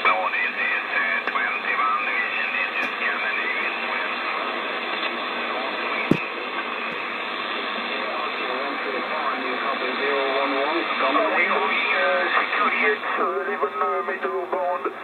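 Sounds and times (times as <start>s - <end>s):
radio static hiss: 0.7s - 13.4s.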